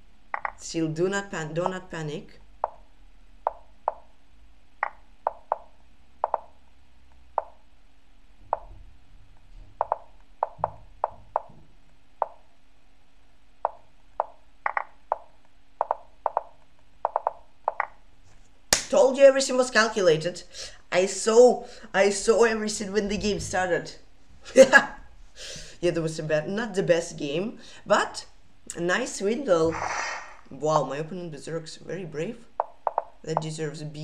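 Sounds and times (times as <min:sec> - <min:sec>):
sharp wooden clicks: 0:00.3 - 0:00.6, 0:03.4 - 0:04.1, 0:04.8 - 0:06.6, 0:09.8 - 0:11.5, 0:13.6 - 0:18.0, 0:32.6 - 0:33.2.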